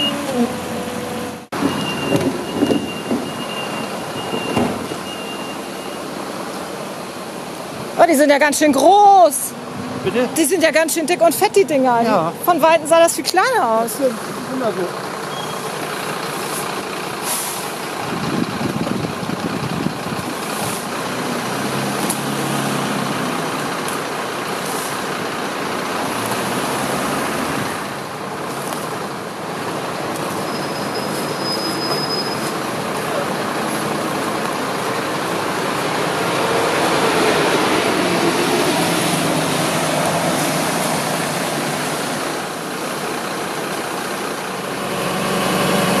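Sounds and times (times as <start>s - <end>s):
buses and heavy vehicles running: 0.0s - 46.0s
road traffic: 0.0s - 46.0s.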